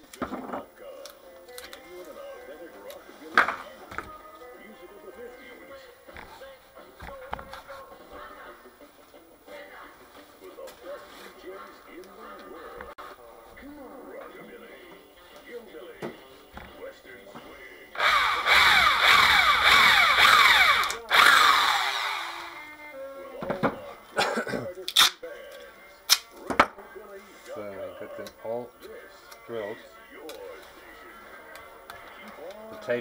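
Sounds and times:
electric drill boring plastic: 18.0 - 22.8.

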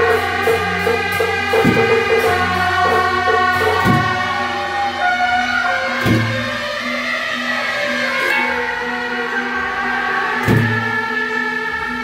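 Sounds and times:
low percussion strike: 0.0 - 4.6
reed horns playing melody: 0.0 - 10.2.

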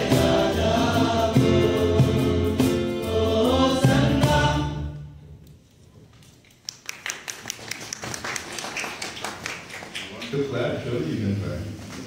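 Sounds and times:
people clapping: 6.2 - 10.7.

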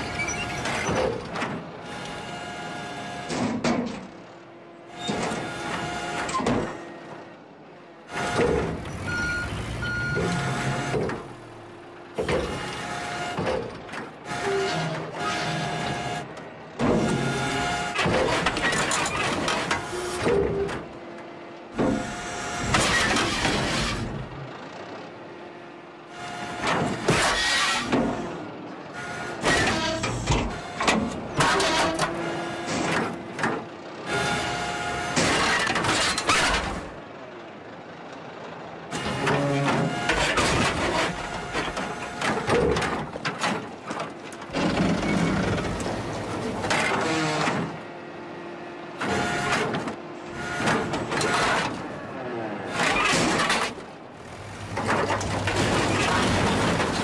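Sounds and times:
cartoon excavator engine running: 0.0 - 57.0
hydraulic arm whining and clunking: 0.0 - 57.0.

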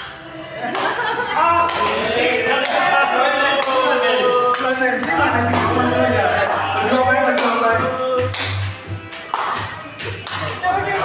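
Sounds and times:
hand claps: 0.0 - 2.0, 2.6 - 2.9, 3.6 - 3.9, 4.5 - 11.0
people singing together: 0.3 - 9.0.

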